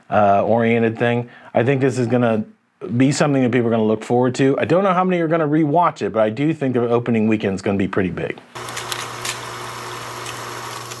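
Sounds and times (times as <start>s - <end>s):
crackling clicks: 8.6s - 9.5s.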